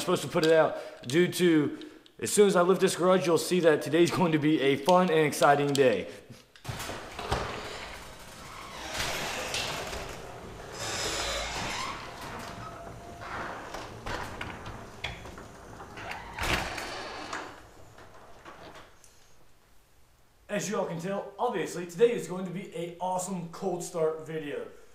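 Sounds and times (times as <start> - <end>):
garage door rolling up clattering: 6.6 - 19.4.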